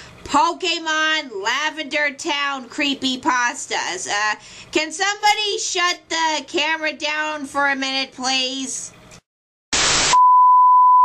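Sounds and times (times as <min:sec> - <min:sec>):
tv static hiss: 0:09.8 - 0:10.2
steady test-pattern beep tone: 0:10.2 - 0:11.0.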